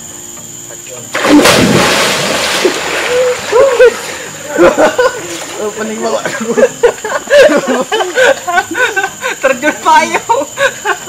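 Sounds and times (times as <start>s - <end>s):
water splashing and churning: 1.2s - 5.9s.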